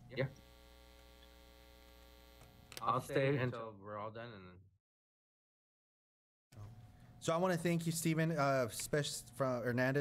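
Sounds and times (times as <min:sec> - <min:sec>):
electrical mains hum: 0:00.0 - 0:03.6, 0:06.6 - 0:10.0.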